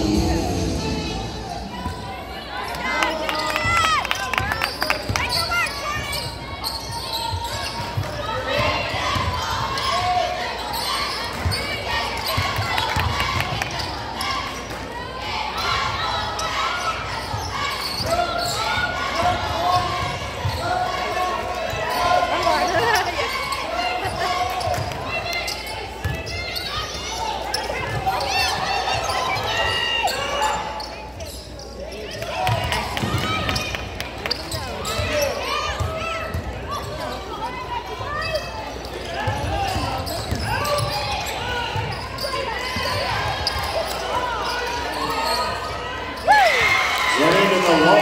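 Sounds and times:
sneakers squeaking: 0.0s - 14.9s, 15.6s - 48.0s.

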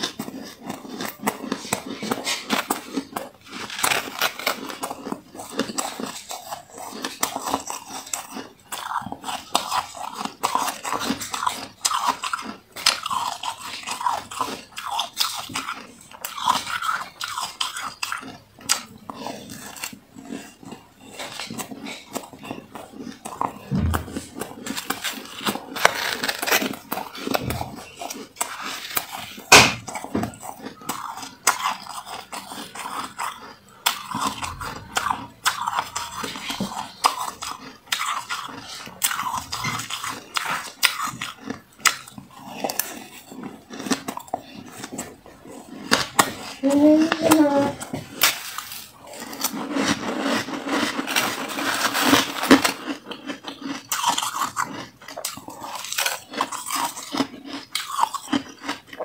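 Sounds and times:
crunching and chewing frost: 0.0s - 59.0s
dull low thump: 23.7s - 24.4s.

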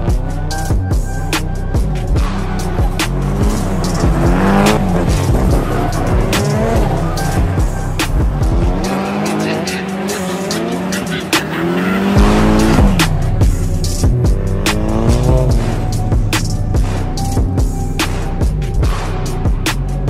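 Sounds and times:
background music with steady beat: 0.0s - 20.0s
car engines revving: 0.0s - 20.0s
tyres squealing: 2.6s - 12.8s.

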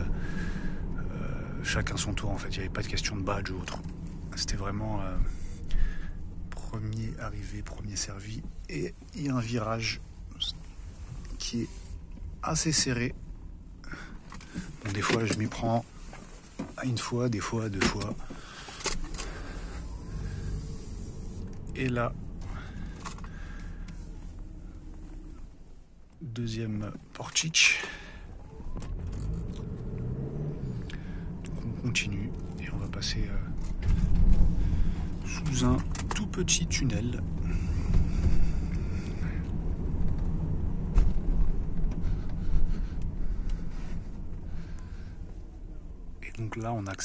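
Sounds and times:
car interior rumble: 0.0s - 47.0s.

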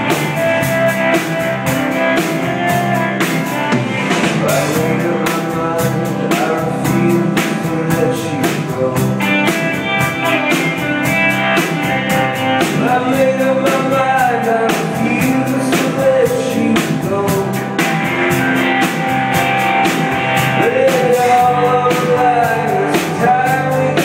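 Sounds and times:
acoustic guitar: 0.0s - 24.0s
drum kit beat: 0.0s - 24.0s
electric bass: 0.0s - 24.0s.

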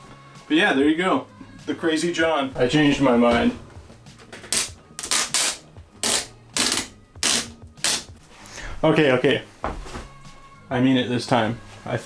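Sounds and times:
vinyl tape ripping off cardboard: 4.4s - 8.2s.

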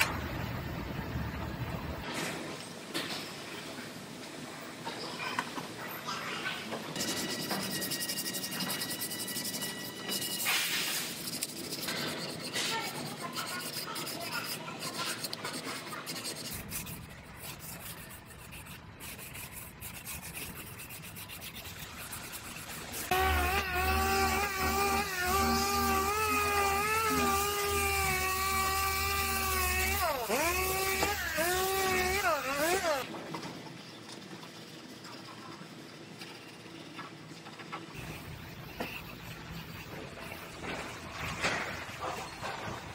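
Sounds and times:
masking tape rubbing and crinkling: 7.0s - 33.0s
masking tape unrolling squeal: 7.0s - 33.0s.

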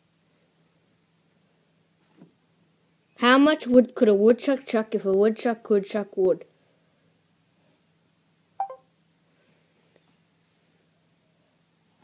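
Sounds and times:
falling electronic chime: 8.6s - 8.8s.

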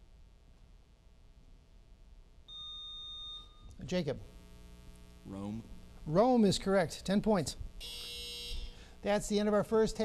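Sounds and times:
high-pitched electronic buzzer beep: 2.5s - 3.7s, 7.8s - 8.9s.

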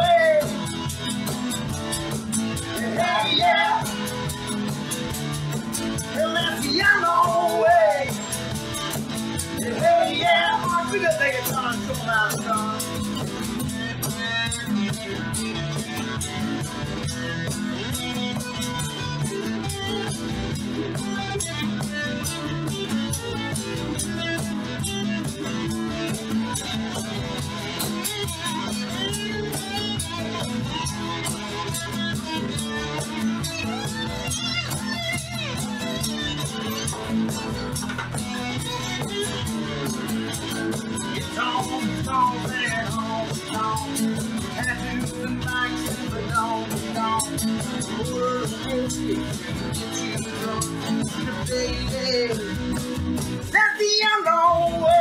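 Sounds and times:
acoustic guitars strumming: 0.0s - 55.0s
electric bass guitar: 0.0s - 55.0s.

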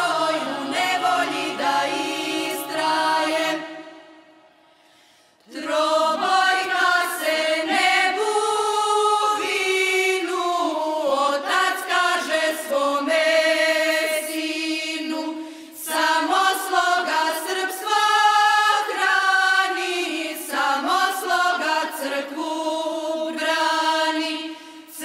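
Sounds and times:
choir singing: 0.0s - 4.6s, 5.4s - 25.0s.

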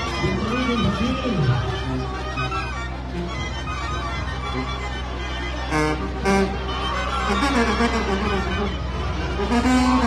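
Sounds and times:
crowd: 0.0s - 10.0s
street brass band music: 0.0s - 10.0s
loud horn blasts: 5.6s - 10.0s.

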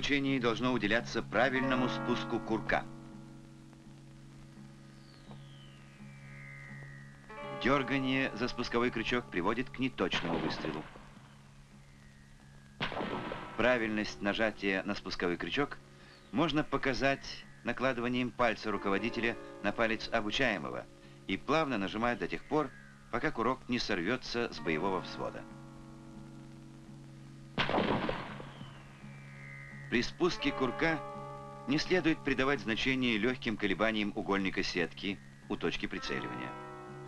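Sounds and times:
low film soundtrack hum: 0.0s - 37.0s
rifle shot: 12.8s - 13.8s, 27.6s - 28.7s.

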